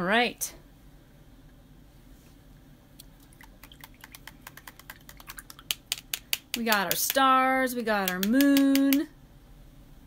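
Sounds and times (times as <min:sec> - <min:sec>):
light irregular clicks and taps: 0:08.0 - 0:09.0.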